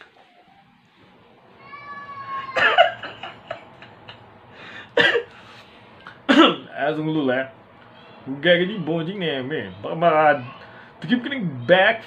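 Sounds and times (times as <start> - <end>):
cat meowing: 1.5 - 2.8, 7.8 - 9.1, 9.7 - 10.8.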